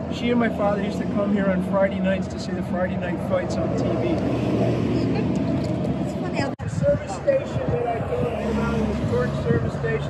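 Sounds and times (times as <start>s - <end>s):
vehicle engine rumbling: 0.0s - 10.0s.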